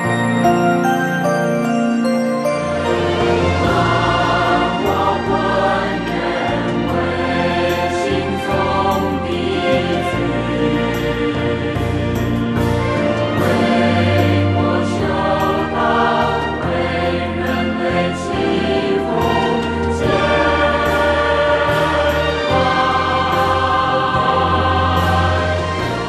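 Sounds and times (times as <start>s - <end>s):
choir singing: 0.0s - 26.0s
instrumental accompaniment with deep bass: 0.0s - 26.0s.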